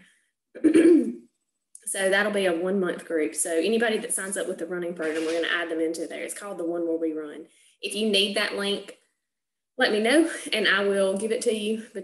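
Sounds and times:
woman clearing her throat: 0.6 - 1.2.

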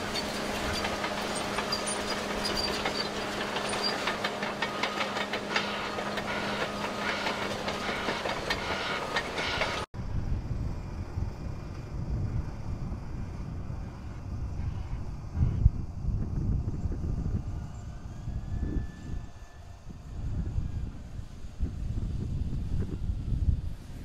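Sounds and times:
steel tracks clattering: 0.0 - 9.9
diesel engine hum: 0.0 - 16.0.

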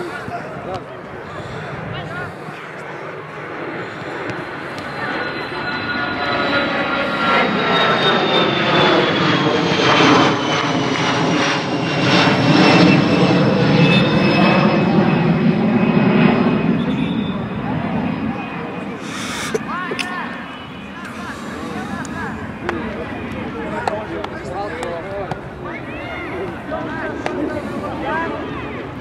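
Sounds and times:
aircraft passing overhead: 0.0 - 29.0.

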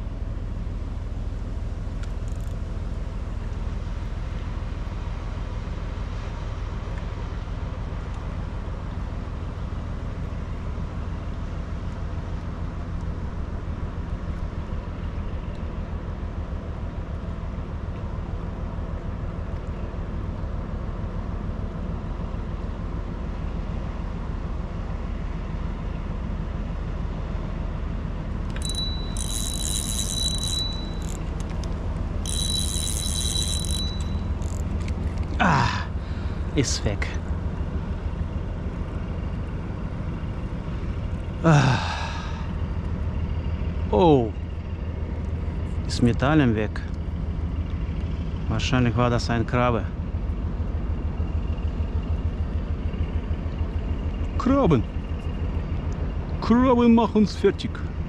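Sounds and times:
ship engine drone: 0.0 - 58.0
electronic bite alarm tone: 28.6 - 31.2, 32.2 - 34.6.

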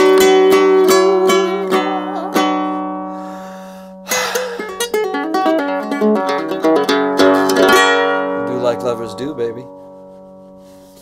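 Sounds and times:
person singing: 0.0 - 2.9
guitalele picked notes: 0.0 - 11.0.

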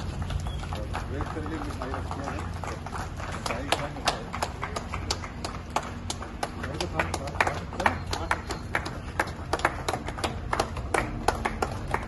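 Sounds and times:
people clapping: 0.0 - 12.0.

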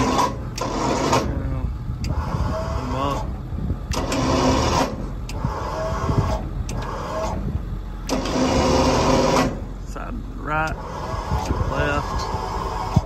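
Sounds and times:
hydraulic power unit whine: 0.0 - 13.0.

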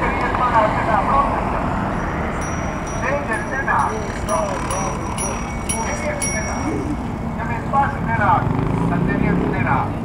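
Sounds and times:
crowd talking: 0.0 - 8.4
street noise: 0.0 - 10.0
wind: 0.0 - 10.0.

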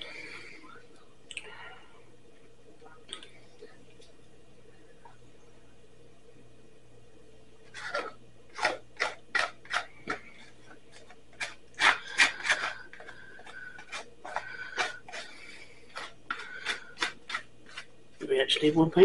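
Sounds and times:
utensil scraping plastic bowl: 7.7 - 18.3.

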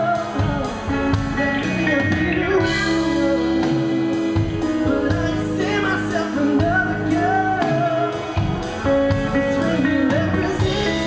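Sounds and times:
pop-rock band playing: 0.0 - 11.0.

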